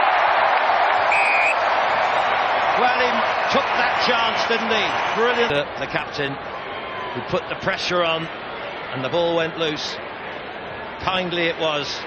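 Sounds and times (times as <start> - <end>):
stadium crowd cheering: 0.0 - 12.0
short high whistle: 1.1 - 1.6.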